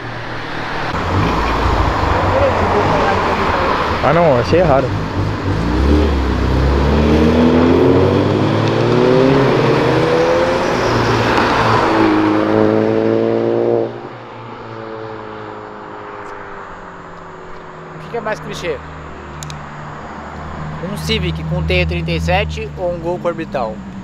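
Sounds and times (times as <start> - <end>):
car engines revving: 0.0 - 24.0.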